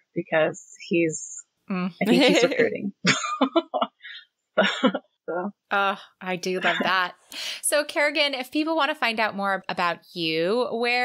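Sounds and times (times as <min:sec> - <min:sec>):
woman speaking: 0:01.7 - 0:02.9, 0:05.7 - 0:11.0
woman laughing: 0:02.0 - 0:05.0, 0:06.6 - 0:07.1.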